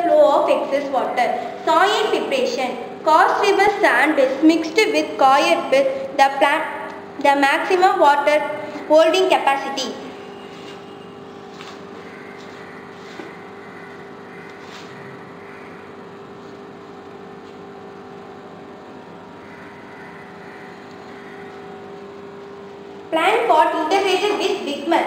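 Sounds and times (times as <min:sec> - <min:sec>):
steady background hum: 0:00.0 - 0:25.0.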